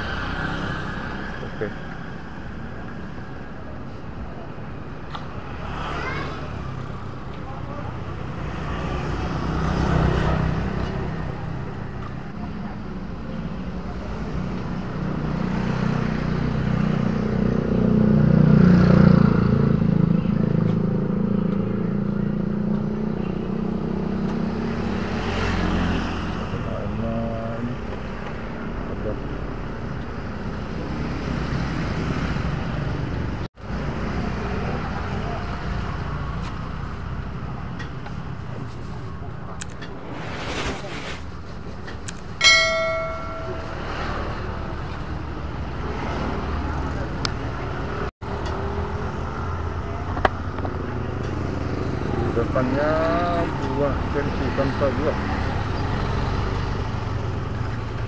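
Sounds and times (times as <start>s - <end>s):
street traffic: 0.0s - 58.0s
motorbike engines running: 5.5s - 58.0s
sharp ringing tone: 42.4s - 44.6s.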